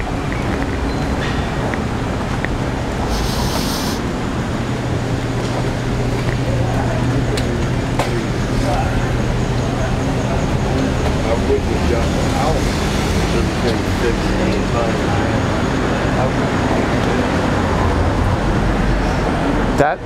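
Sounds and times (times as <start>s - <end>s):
street traffic noise: 0.0s - 20.0s
vehicle engine hum: 0.0s - 20.0s
faint voices: 3.0s - 20.0s.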